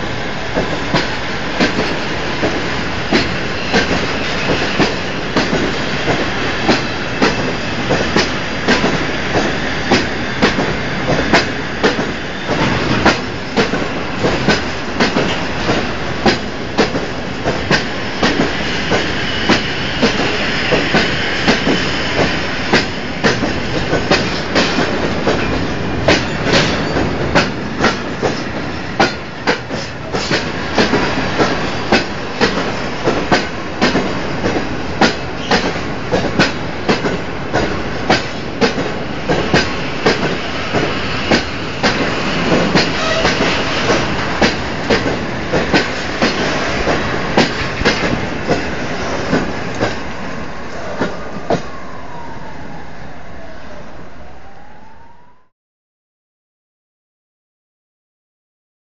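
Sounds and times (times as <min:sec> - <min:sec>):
train rolling rumble: 0:00.0 - 0:52.8
train wheels clicking over rail joints: 0:00.5 - 0:50.1.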